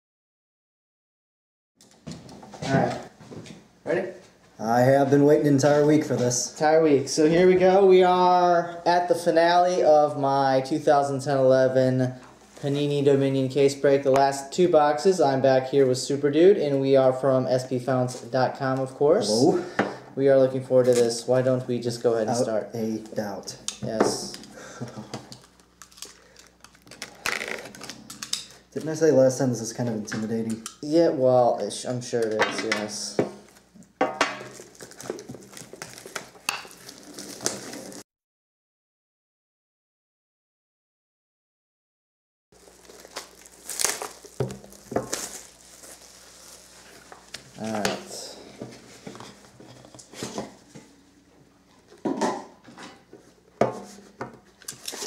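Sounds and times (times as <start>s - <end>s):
person laughing: 24.6s - 25.2s
plastic wrap crinkling and tearing: 25.3s - 28.6s, 34.4s - 38.0s, 42.6s - 48.3s, 54.7s - 55.0s.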